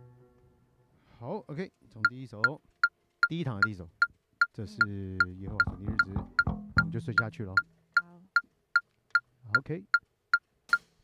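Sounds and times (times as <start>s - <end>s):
metronome ticking: 2.0s - 10.9s
person speaking: 4.5s - 8.2s
low bass note: 5.6s - 7.4s.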